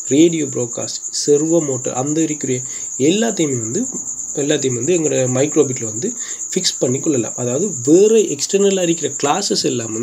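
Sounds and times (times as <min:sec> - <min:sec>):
man talking: 0:00.0 - 0:10.0.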